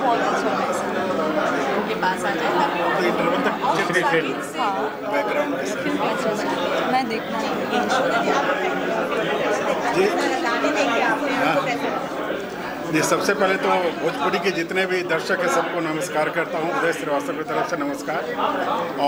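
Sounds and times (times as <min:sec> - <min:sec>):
indistinct chatter of voices: 0:00.0 - 0:19.0.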